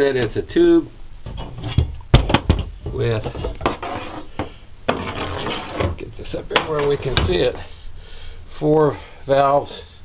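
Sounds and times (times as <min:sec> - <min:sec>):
metal rubbing against wood: 0:03.0 - 0:07.7.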